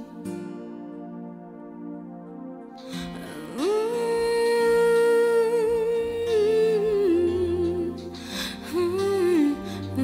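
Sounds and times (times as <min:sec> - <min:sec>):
soft pop ballad accompaniment: 0:00.0 - 0:10.0.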